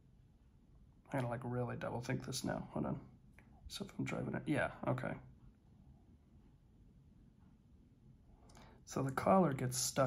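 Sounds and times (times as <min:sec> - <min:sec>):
person speaking: 0:01.1 - 0:05.4
breath: 0:08.4 - 0:08.8.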